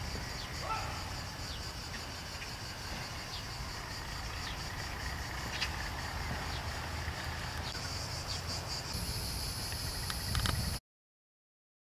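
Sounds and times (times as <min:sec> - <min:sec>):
higher insect tone: 0:00.0 - 0:10.8
insects chirping: 0:00.0 - 0:10.8.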